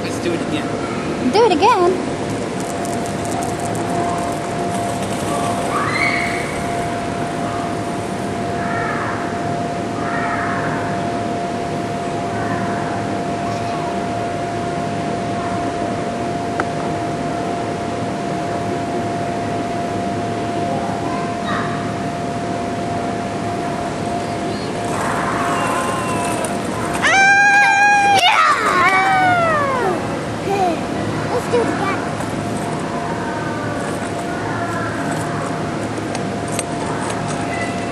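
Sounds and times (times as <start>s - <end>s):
faint constant tone: 0.0s - 37.9s
small wheels rolling on wooden floor: 2.3s - 7.0s, 24.7s - 29.1s, 32.0s - 33.0s, 33.7s - 37.9s.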